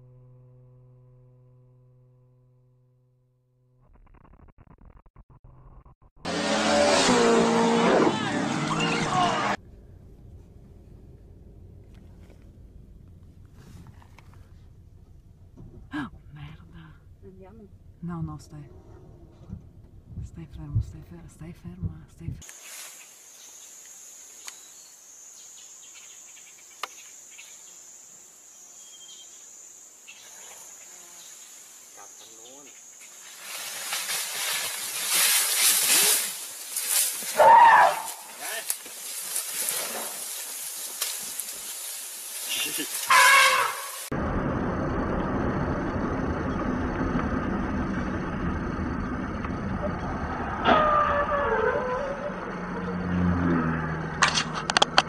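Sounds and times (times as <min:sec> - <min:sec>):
car driving on highway: 0:06.2 - 0:20.9, 0:44.1 - 0:55.0
high-pitched insect chorus: 0:22.4 - 0:54.0
hissing rustling: 0:38.0 - 0:44.1.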